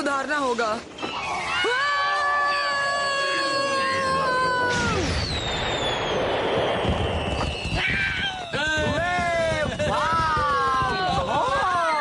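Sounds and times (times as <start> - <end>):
falling whistle: 1.0 - 8.7.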